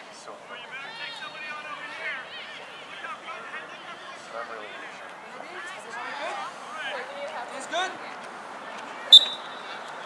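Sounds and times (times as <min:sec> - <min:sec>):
referee's whistle blast: 0:09.1 - 0:09.6.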